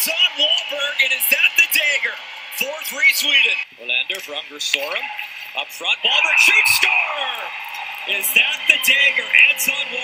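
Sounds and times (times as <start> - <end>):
sports commentary speech: 0.0 - 10.0
background music: 4.8 - 10.0.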